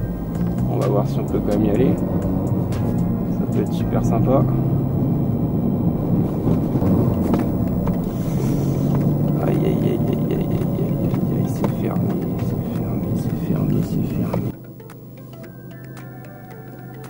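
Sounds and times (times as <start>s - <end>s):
car engine running: 0.0s - 17.0s
tyre and road noise: 0.0s - 17.0s.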